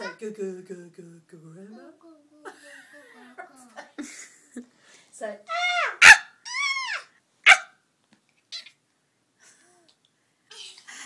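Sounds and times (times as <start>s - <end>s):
child shouting: 5.5s - 7.1s.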